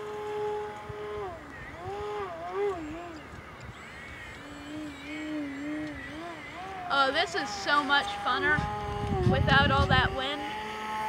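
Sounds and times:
model airplane motor buzzing: 0.0 - 11.0.

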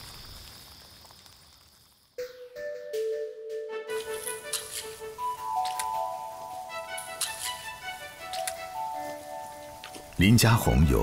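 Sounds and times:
high insect drone: 0.0 - 3.2, 3.9 - 11.0.

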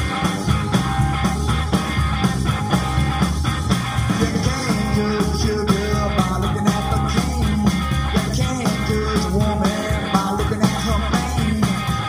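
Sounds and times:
bass and drums: 0.0 - 12.0
electric guitar bending notes: 0.0 - 12.0
rock and roll over loudspeaker: 0.0 - 12.0.

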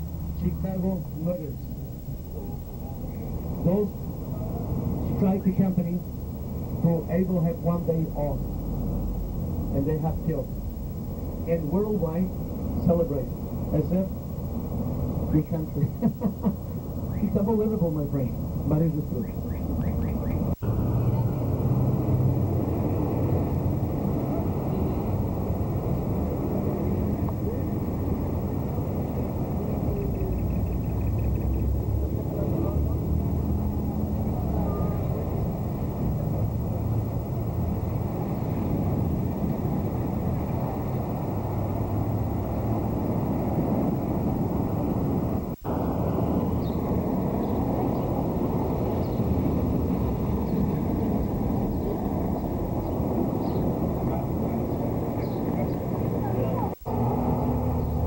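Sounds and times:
low rumble: 0.0 - 58.0
faint indistinct voices: 0.4 - 6.2, 16.6 - 23.0, 26.9 - 31.6, 32.2 - 36.5, 45.7 - 57.6.

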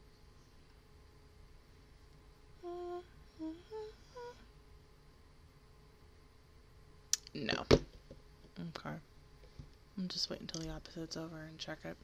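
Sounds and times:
woman humming: 2.6 - 4.5.

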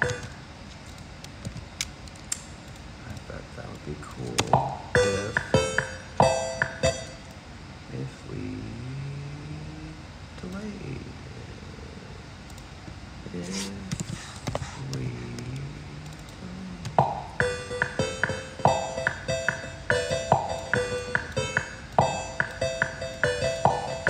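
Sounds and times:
bright musical notes: 0.0 - 0.4, 5.0 - 7.3, 17.4 - 24.0.

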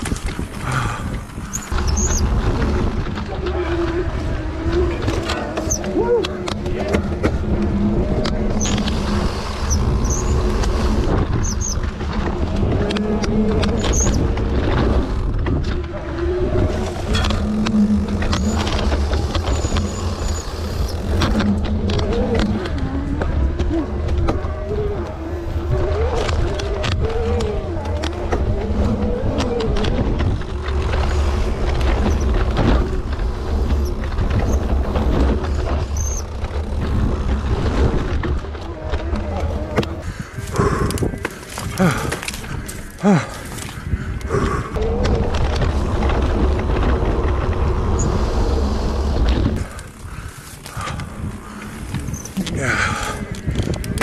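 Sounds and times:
low rumble: 0.0 - 54.0.

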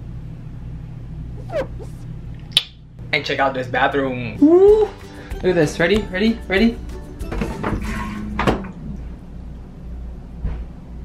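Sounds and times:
steady low hum: 0.0 - 5.6.

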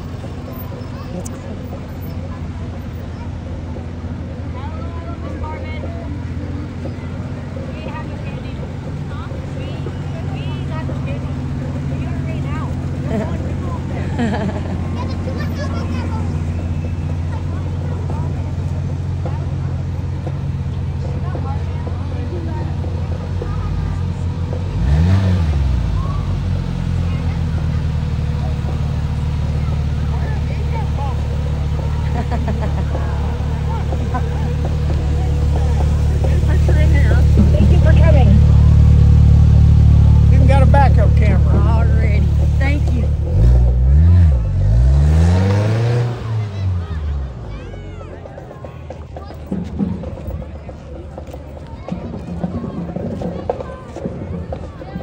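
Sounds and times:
engine running with throttle blips: 0.0 - 55.0.

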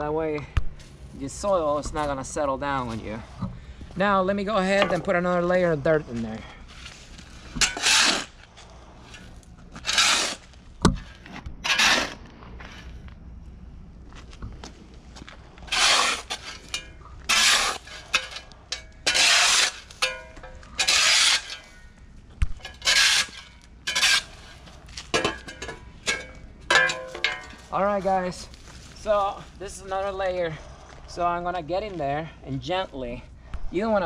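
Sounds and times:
shovel scraping soil: 6.0 - 13.0, 15.6 - 22.0, 22.6 - 29.4.

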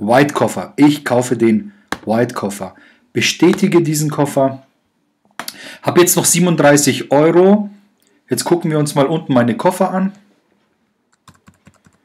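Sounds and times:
computer mouse clicks: 11.1 - 12.0.

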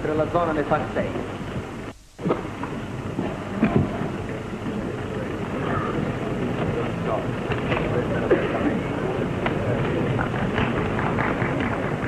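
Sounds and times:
crowd murmur in a hall: 0.0 - 12.0
film soundtrack hiss and crackle: 0.0 - 12.0.

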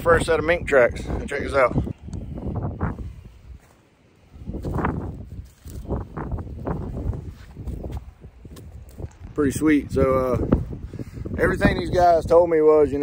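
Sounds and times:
wind rumble on microphone: 0.0 - 13.0
footsteps on dry sand: 2.0 - 11.8.

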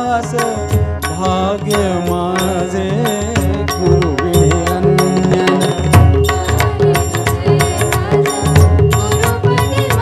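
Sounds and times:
man singing devotional song: 0.0 - 10.0.

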